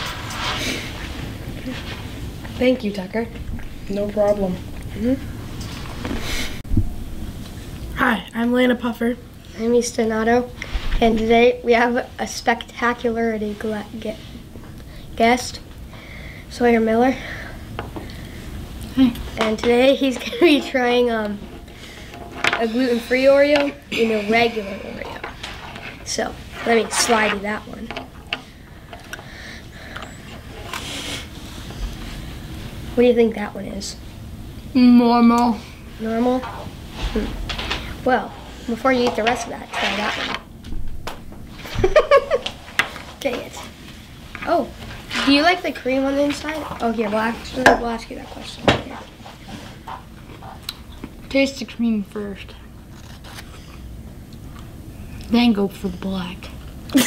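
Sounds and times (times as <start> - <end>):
low room hum: 0.0 - 57.0.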